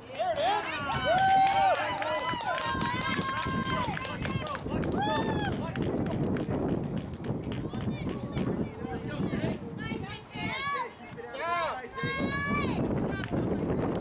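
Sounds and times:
crowd shouting and cheering: 0.0 - 6.3, 7.6 - 13.4
scattered clapping: 0.0 - 8.7, 12.8 - 14.0
long drawn-out yells: 0.4 - 5.6.

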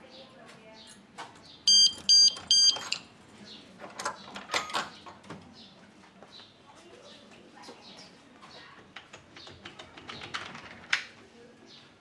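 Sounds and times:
loud electronic beeps: 1.7 - 2.8
keys clinking in a padlock: 2.0 - 3.1.

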